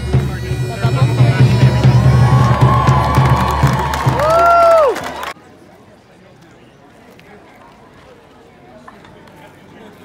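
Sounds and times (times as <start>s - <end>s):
bagpipes playing: 0.0s - 3.7s
drum beating: 0.0s - 5.3s.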